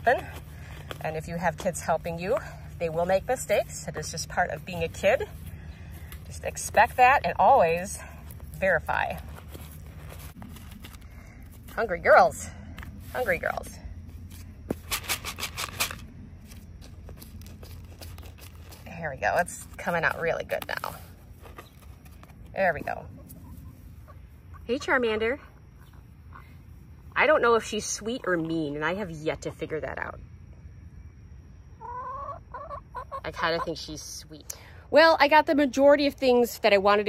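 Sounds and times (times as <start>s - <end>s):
low steady rumble: 0.0s - 14.9s
hen calling: 31.8s - 33.9s.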